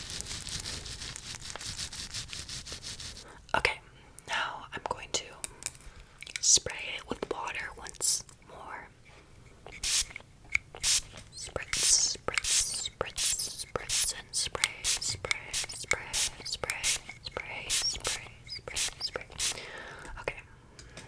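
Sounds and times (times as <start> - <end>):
soft whispering: 3.3 - 5.6, 6.4 - 9.0, 11.3 - 20.5
spray bottle spritzing: 9.7 - 19.7.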